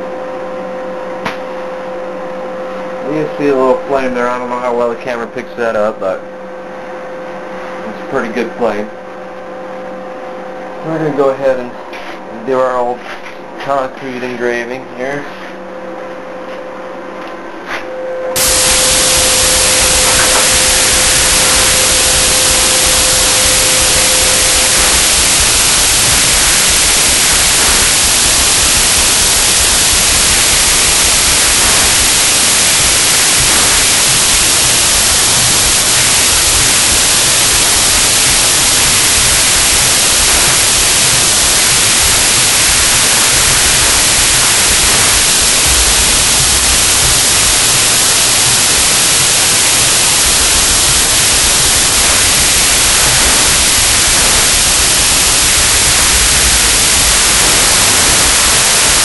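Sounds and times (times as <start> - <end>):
loud hiss of torch flame: 18.4 - 59.0.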